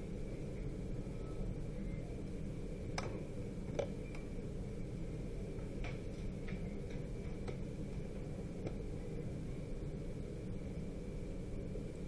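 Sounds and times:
faint high whine: 0.0s - 12.0s.

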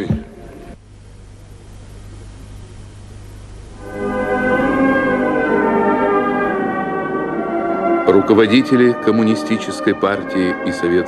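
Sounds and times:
low steady hum: 0.0s - 11.0s
brass band playing funeral music: 3.8s - 11.0s.

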